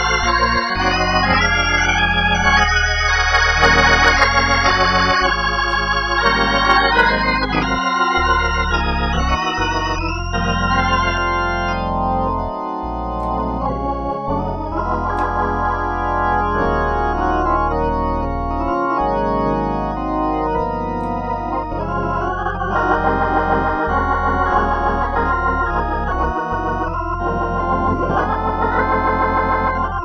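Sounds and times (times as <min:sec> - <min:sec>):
organ bass pedal notes: 0:00.0 - 0:30.0
organ playing gospel chords: 0:00.0 - 0:30.0.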